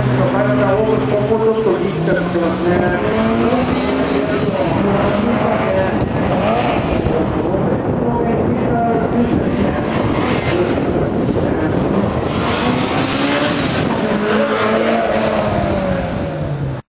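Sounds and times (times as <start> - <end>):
car engine revving: 0.0 - 16.9.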